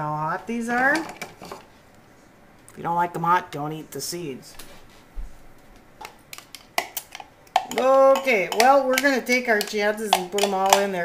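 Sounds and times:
woman's voice: 0.0 - 1.2
kitchen items clicking on wooden counter: 6.0 - 11.0.

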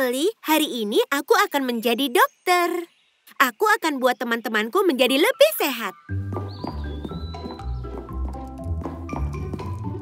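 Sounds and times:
cartoon background music: 4.6 - 10.0.

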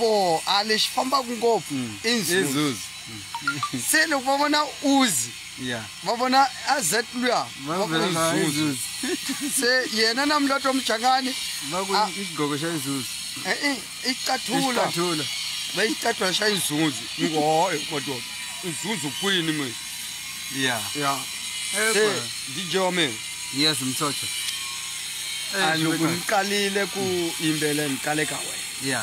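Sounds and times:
man speaking: 0.0 - 19.7, 20.6 - 24.2, 25.6 - 29.0
men talking: 0.0 - 19.8, 20.5 - 24.4, 25.5 - 29.0.

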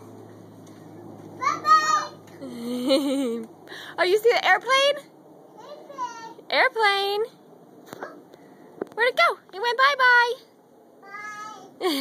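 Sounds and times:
child's excited high call: 1.4 - 2.2.

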